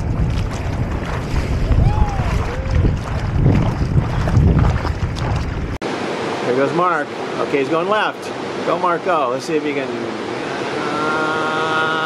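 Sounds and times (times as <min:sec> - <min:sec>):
wind buffeting microphone: 0:00.0 - 0:05.8
water sloshing: 0:00.0 - 0:06.4
surf hiss: 0:05.8 - 0:12.0.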